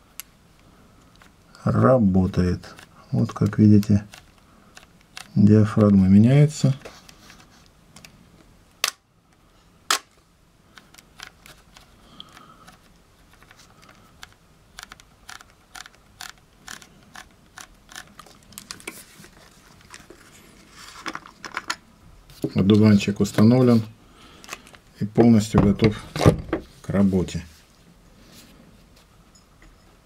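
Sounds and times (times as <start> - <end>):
camera dial clicking: 14.2 - 18.3.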